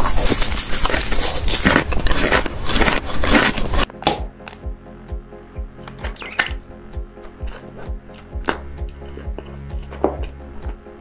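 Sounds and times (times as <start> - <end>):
crunching and chewing candy: 0.0 - 4.6, 6.0 - 6.7, 7.3 - 10.8
background music with soft beat: 3.8 - 11.0.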